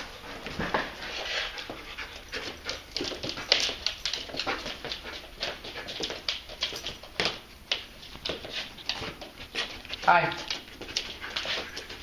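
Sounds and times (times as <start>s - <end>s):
dog sniffing: 0.1s - 7.1s, 8.2s - 12.0s.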